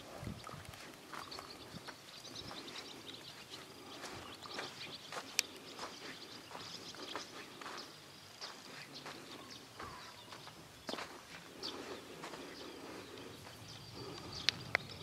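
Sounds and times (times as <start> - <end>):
hooves on sand at a walk: 0.0 - 15.0.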